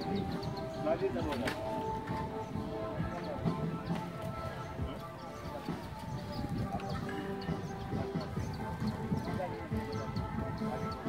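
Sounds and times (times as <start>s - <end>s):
men talking: 0.0s - 11.0s
music with held tones: 0.0s - 11.0s.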